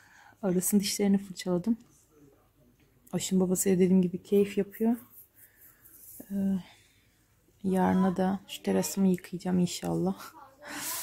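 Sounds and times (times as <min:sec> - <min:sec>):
faint rustling and breath: 0:04.3 - 0:07.6.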